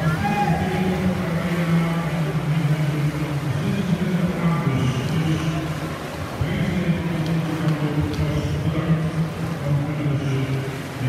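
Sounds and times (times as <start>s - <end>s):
crowd noise: 0.0s - 11.0s
swimmers splashing: 0.0s - 11.0s.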